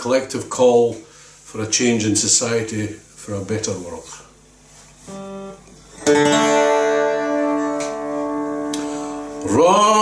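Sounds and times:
acoustic guitar strums: 4.8s - 10.0s.

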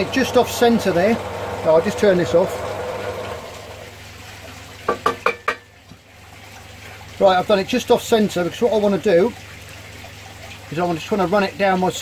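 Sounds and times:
wood knocking on metal table: 4.9s - 5.7s.

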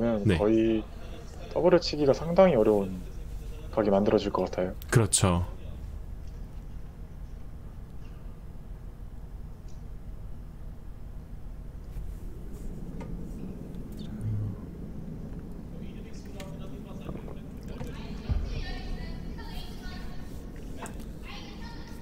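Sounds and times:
steady low rumble: 2.0s - 22.0s
indistinct voices: 13.5s - 22.0s.

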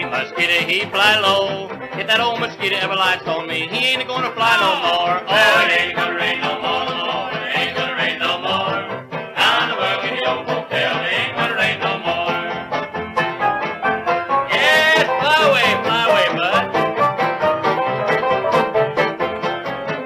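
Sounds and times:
fiddle playing sliding lead: 0.0s - 20.0s
string band rhythm: 0.0s - 20.0s.

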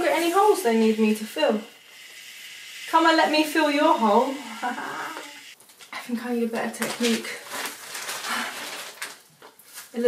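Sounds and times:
aerosol foam hissing and sputtering: 0.0s - 5.6s.

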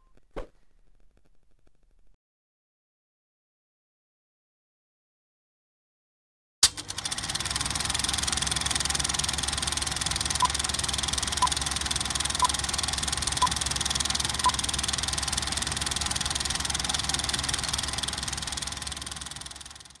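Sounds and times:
film projector clatter: 6.6s - 20.0s.

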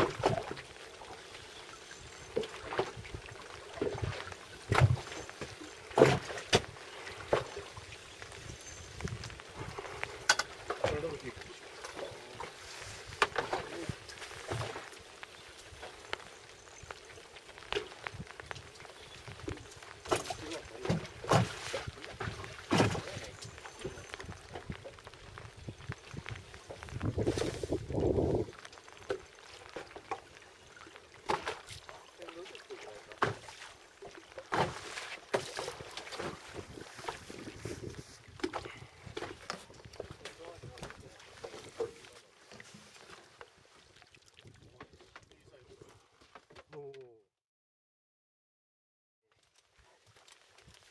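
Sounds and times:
water lapping against boat hull: 0.0s - 47.2s, 49.4s - 50.9s.

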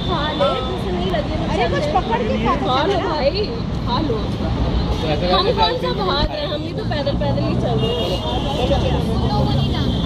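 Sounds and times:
people talking: 0.0s - 10.0s
street hum: 0.0s - 10.0s.

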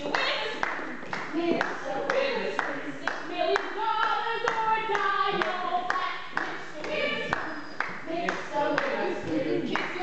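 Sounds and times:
hand claps keeping a beat: 0.0s - 10.0s.

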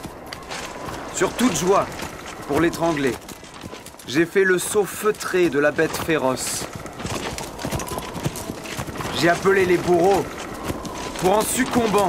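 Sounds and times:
rapid footfalls on hard ground: 0.0s - 12.0s.

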